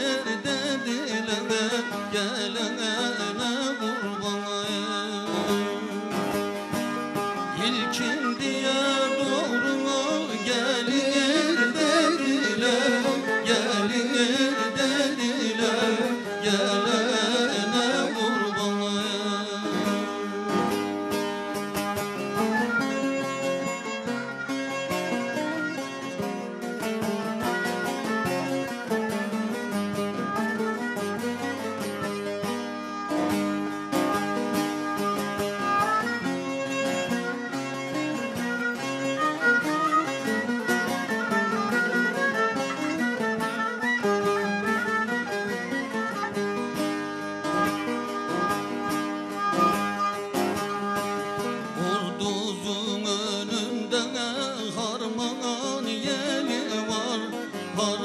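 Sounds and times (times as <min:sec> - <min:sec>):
long-necked lute plucked: 0:00.0 - 0:58.0.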